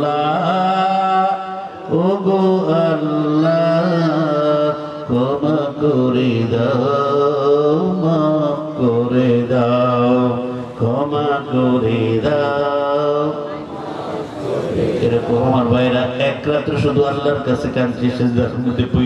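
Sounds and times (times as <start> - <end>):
man chanting into a microphone: 0.0 - 13.6, 14.6 - 19.0.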